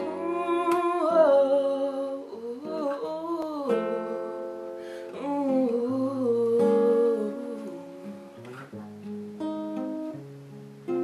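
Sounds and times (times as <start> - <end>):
girl humming: 0.0 - 4.2.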